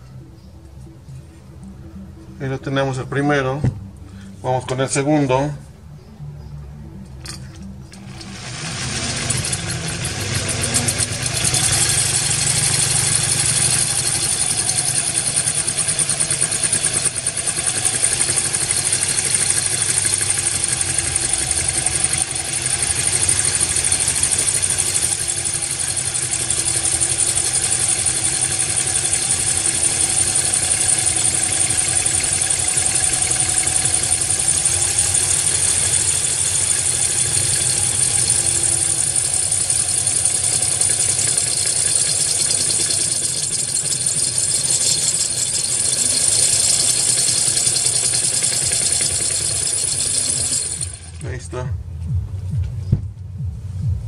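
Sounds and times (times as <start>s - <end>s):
power drill boring through glass: 7.3s - 51.4s.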